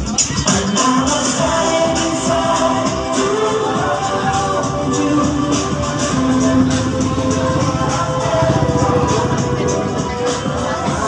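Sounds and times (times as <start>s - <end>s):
loud music with steady beat: 0.0s - 11.0s.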